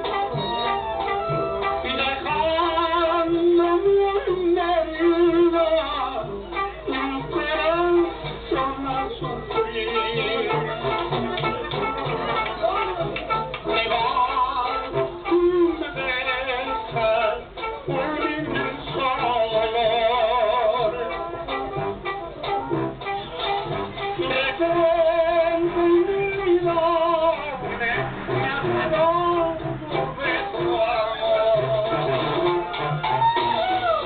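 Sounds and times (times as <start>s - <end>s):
folk band with guitar and tuba: 0.0s - 34.0s.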